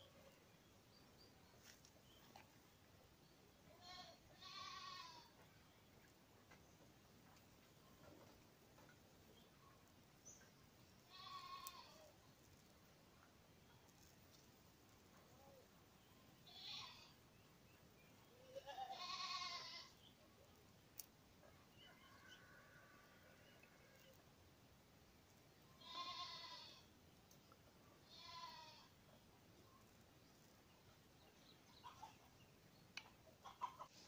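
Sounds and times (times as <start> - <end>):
faint animal bleats: 3.7 - 5.4, 11.0 - 12.1, 16.4 - 17.2, 18.3 - 20.1, 21.9 - 24.2, 25.8 - 26.9, 28.0 - 29.0.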